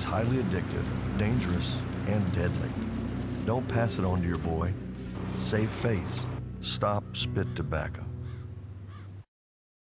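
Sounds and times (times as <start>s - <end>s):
low steady hum: 0.0s - 6.9s
crow cawing: 7.0s - 9.2s.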